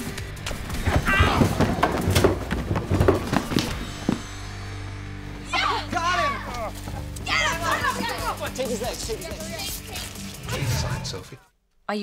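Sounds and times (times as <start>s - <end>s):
knocks and thuds: 0.4s - 4.2s
low music drone: 3.8s - 5.8s
excited voices exclaiming: 5.4s - 9.9s.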